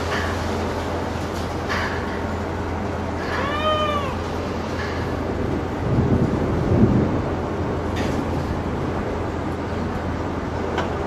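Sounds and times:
crane engine drone: 0.0s - 11.0s.

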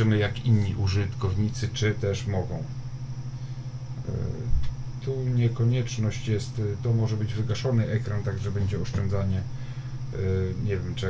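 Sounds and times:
low electrical buzzing hum: 0.0s - 11.0s.

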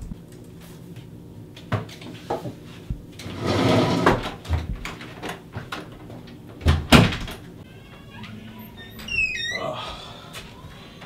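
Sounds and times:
knocks and footsteps: 1.0s - 3.3s, 4.0s - 9.1s.

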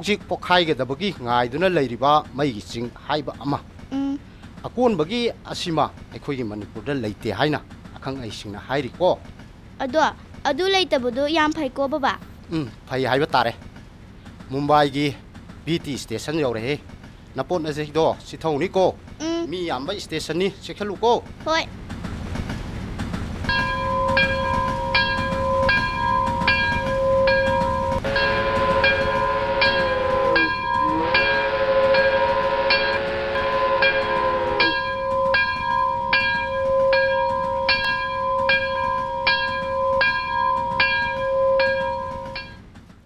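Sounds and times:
rumbling train: 0.0s - 43.0s
bell ringing rapidly: 23.5s - 33.0s, 33.8s - 42.6s
train horn: 23.5s - 42.6s.

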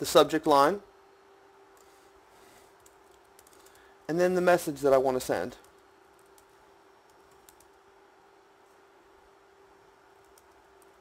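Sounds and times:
faint steady hum: 0.0s - 11.0s
computer keyboard typing: 2.8s - 3.8s, 5.6s - 7.8s, 10.1s - 11.0s.

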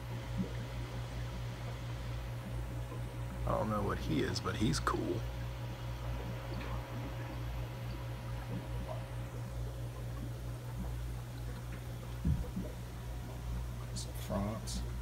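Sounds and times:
aquarium equipment humming: 0.0s - 15.0s
thump: 12.2s - 12.5s.

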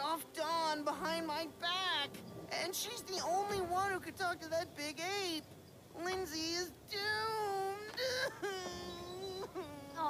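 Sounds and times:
cartoon voice wailing: 7.0s - 10.0s.

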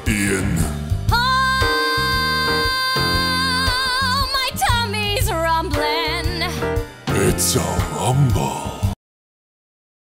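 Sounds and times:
musical theatre band: 0.0s - 8.8s
woman singing with vibrato: 1.1s - 6.7s.

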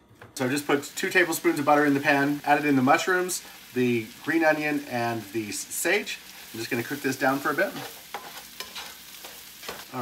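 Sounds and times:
vegetables sizzling in butter: 0.4s - 10.0s
spatula clicking and scraping: 7.8s - 10.0s.

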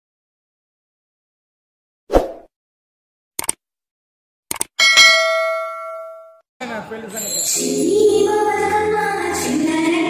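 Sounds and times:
quick clicks: 3.4s - 3.6s, 4.5s - 4.8s
bell ding: 4.8s - 6.4s.

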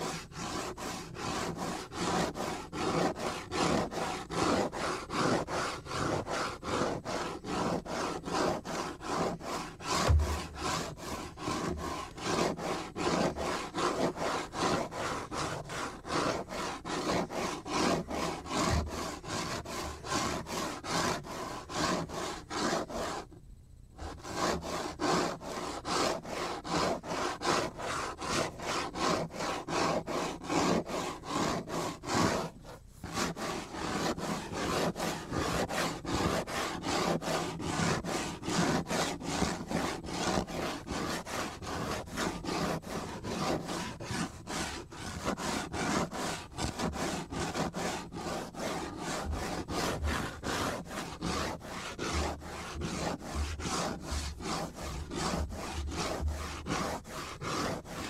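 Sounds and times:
cutting board rubbing: 0.0s - 23.3s, 24.0s - 58.0s.

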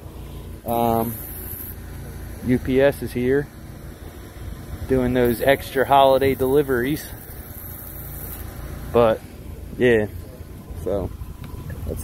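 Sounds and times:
steady low rumble: 0.0s - 12.0s
spray wand hissing: 0.7s - 1.8s, 6.4s - 8.6s.

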